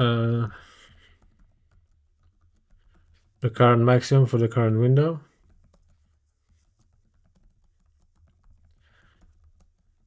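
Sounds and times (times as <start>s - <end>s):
typing on a keyboard: 0.9s - 3.4s, 5.3s - 10.0s.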